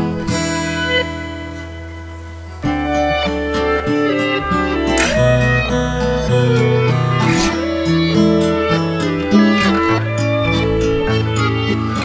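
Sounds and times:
held low bass notes: 0:00.0 - 0:12.0
plucked guitar-like melody: 0:00.0 - 0:12.0.

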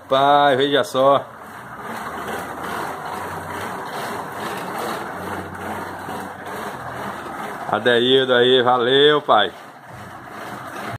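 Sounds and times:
bicycle tyre whirring on rollers: 0:00.0 - 0:10.9.

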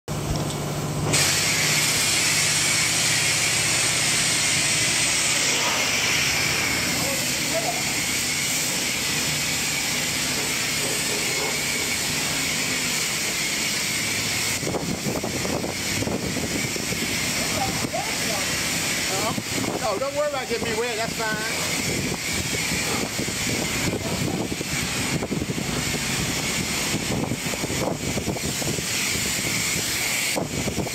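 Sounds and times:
pressure washer spray hissing: 0:01.0 - 0:30.9.

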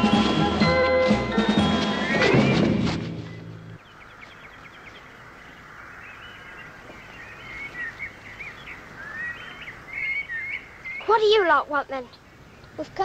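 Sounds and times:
birds chirping and singing: 0:01.4 - 0:12.8
steady background hiss: 0:03.7 - 0:13.0.

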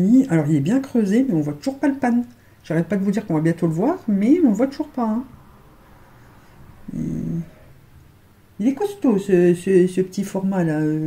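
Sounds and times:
short low vocal sound: 0:05.2 - 0:07.9.

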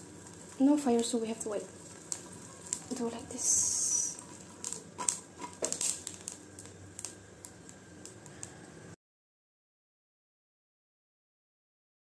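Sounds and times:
chilies crackling in a hot pan: 0:00.0 - 0:09.0.

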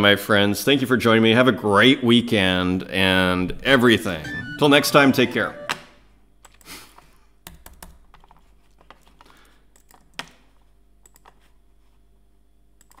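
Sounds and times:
computer keyboard clicks: 0:07.4 - 0:10.4, 0:11.0 - 0:11.4, 0:12.8 - 0:13.0.

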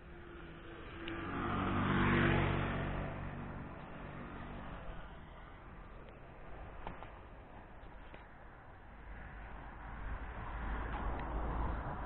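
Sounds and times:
car driving past: 0:00.2 - 0:05.6.

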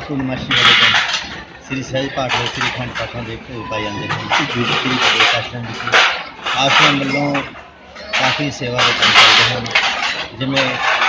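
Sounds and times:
man speaking: 0:00.0 - 0:10.8.

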